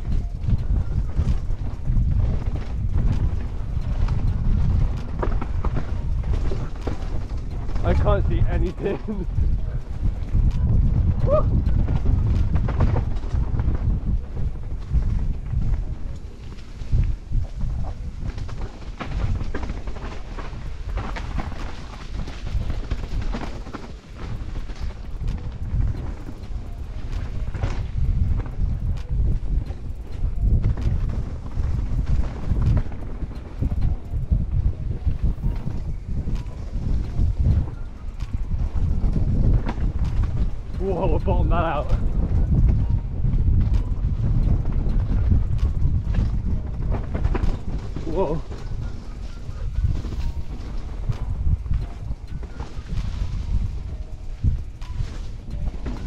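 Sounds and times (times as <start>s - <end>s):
bike rattling over bumps: 0.0s - 56.0s
wind buffeting microphone: 0.0s - 56.0s.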